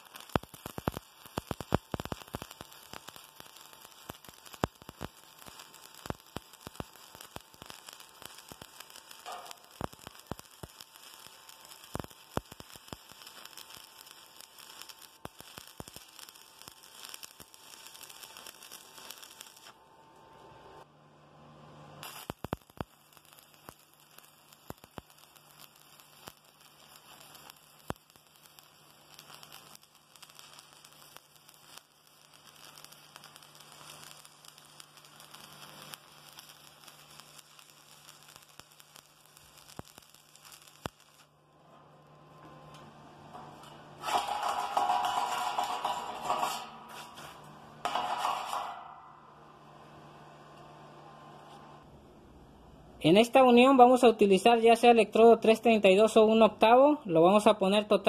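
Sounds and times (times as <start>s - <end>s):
welding arc crackling: 0.0s - 19.8s, 22.0s - 42.0s, 42.7s - 50.0s, 53.0s - 58.0s.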